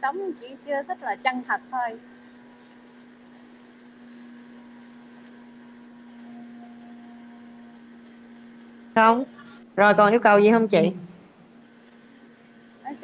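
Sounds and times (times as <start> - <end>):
low hum and hiss: 0.0 - 13.0.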